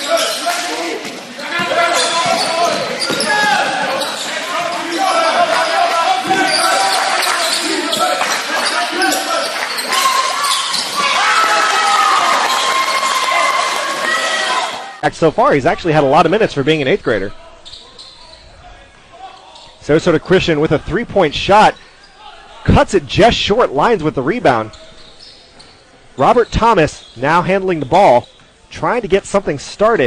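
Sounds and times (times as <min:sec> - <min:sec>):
players and spectators calling out: 0:00.0 - 0:28.5.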